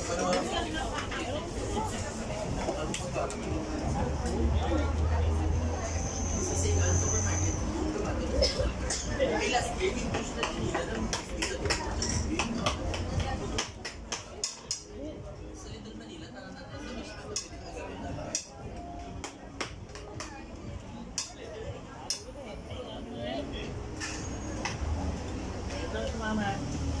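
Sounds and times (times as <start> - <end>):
diners chattering: 0.0 - 27.0.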